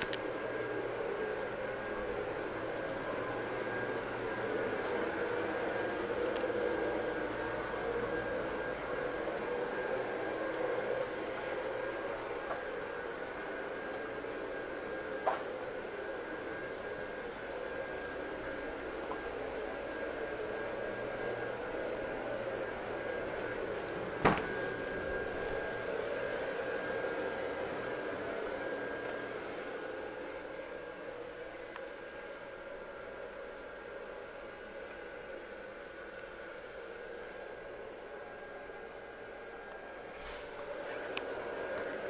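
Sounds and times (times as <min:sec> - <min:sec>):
indoor background hum: 0:00.0 - 0:42.0
thin high whine: 0:00.0 - 0:42.0.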